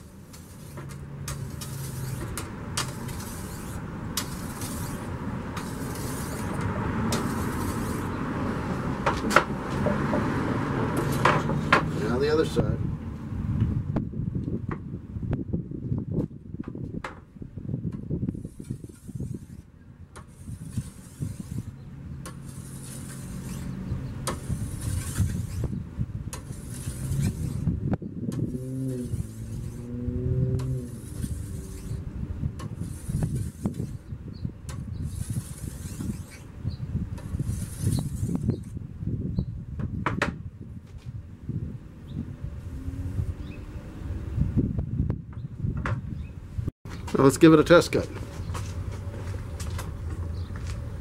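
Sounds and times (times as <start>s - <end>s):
vehicle engine: 0.0s - 15.3s, 18.3s - 38.8s, 40.8s - 45.3s, 46.4s - 51.0s
steady low rumble: 0.0s - 35.3s
whetstone rasping on steel blade: 0.3s - 8.1s, 18.4s - 25.7s, 30.6s - 32.0s.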